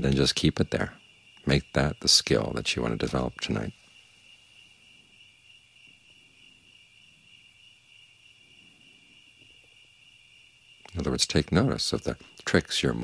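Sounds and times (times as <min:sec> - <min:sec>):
crickets trilling: 0:00.0 - 0:13.0.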